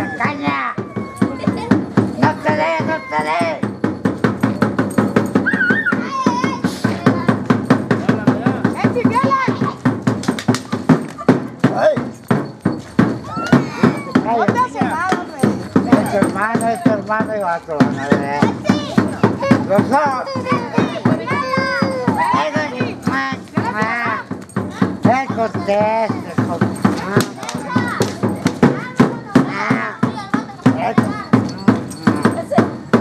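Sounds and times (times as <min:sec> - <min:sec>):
children shouting and squealing: 0:00.0 - 0:08.0, 0:08.6 - 0:33.0
percussion beating a steady rhythm: 0:00.0 - 0:33.0.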